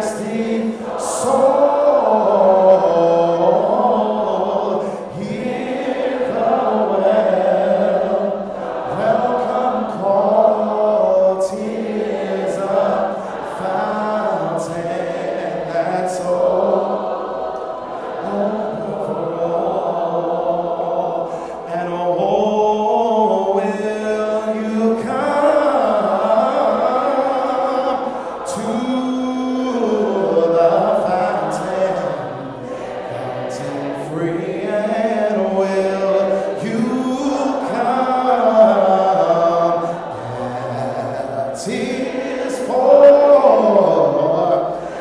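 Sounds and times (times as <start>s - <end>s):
group singing a cappella: 0.0s - 45.0s.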